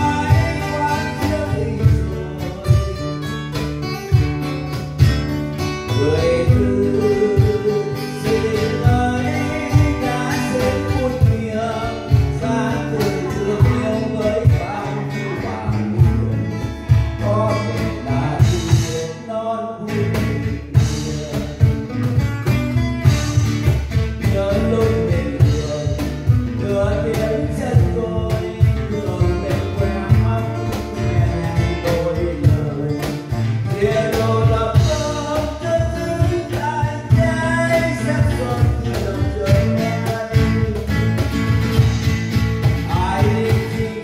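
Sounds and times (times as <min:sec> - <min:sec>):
man singing into microphone: 0:00.0 - 0:03.6, 0:05.8 - 0:22.2, 0:23.4 - 0:44.0
cajon hand strokes: 0:00.0 - 0:19.1, 0:20.1 - 0:44.0
acoustic guitars strummed: 0:00.0 - 0:44.0.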